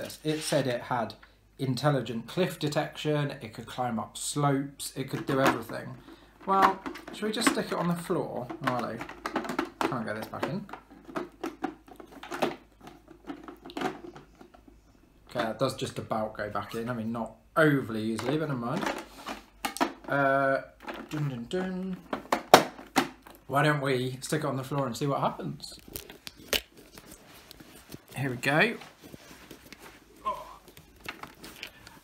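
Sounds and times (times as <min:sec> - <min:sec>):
plastic knocks and scrapes: 0:05.1 - 0:15.5.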